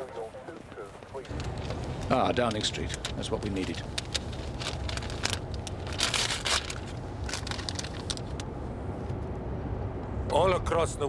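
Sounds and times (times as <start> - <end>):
vehicle interior rumble: 0.0 - 11.0.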